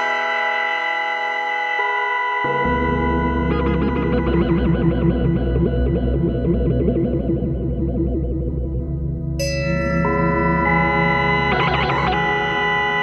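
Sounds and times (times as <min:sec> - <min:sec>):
synthesizer plucked notes: 0:02.3 - 0:13.0
sustained low bass note: 0:02.6 - 0:09.4.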